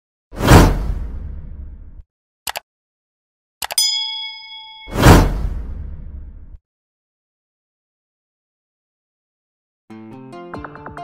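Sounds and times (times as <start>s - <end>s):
whoosh sound effect: 4.9s - 6.3s.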